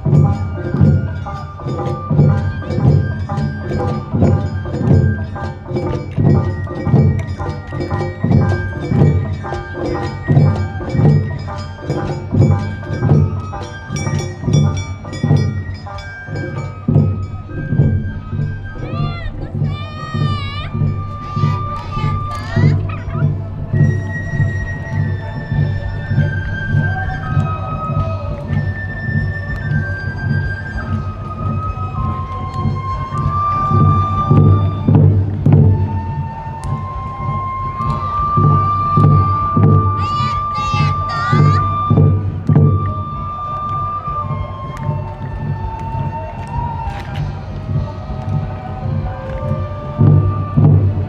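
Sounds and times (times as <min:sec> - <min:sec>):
bamboo flute melody: 0:00.0 - 0:51.0
drums beating: 0:00.0 - 0:51.0
high wavering calls: 0:09.4 - 0:34.8, 0:36.0 - 0:46.4.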